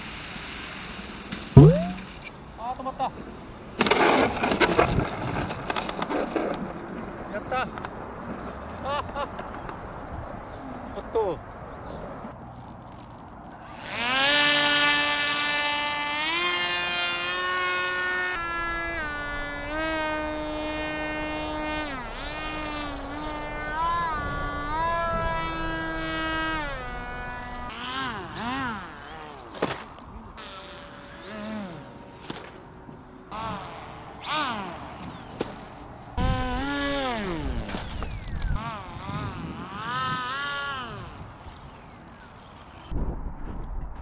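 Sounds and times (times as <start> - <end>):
model plane motor whining: 13.6 - 32.7, 33.3 - 42.9.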